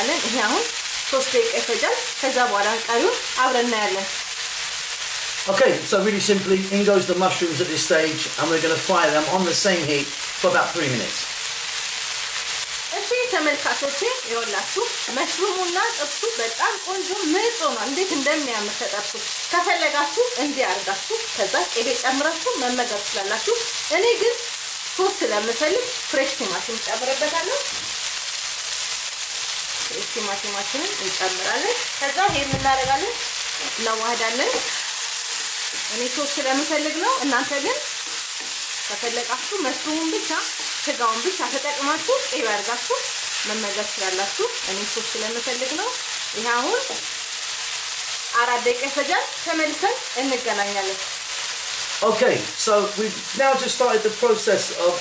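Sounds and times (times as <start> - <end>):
food sizzling in a pan: 0.0 - 55.0.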